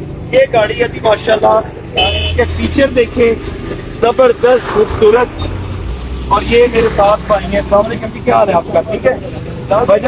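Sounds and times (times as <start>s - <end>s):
steady low hum: 4.4s - 6.8s.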